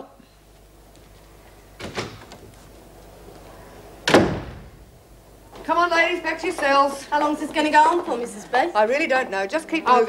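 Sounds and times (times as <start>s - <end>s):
door slamming shut: 1.8s - 2.4s, 4.0s - 4.8s.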